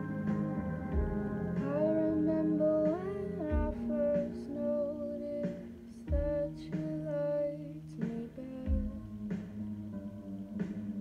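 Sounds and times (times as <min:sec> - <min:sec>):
quiet guitar: 0:00.0 - 0:11.0
woman singing softly: 0:01.6 - 0:09.1.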